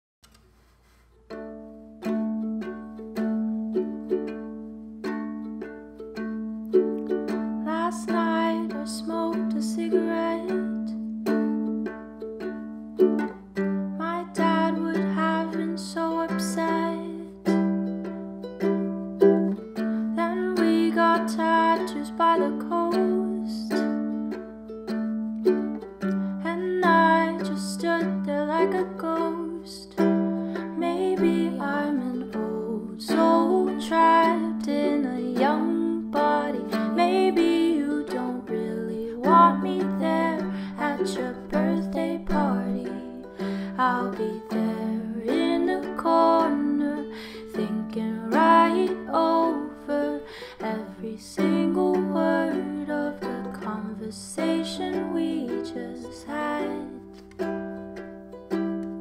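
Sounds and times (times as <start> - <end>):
ukulele strumming chords: 0.2 - 59.0
woman singing: 7.0 - 11.1, 13.9 - 17.6, 20.0 - 24.1, 26.4 - 57.4.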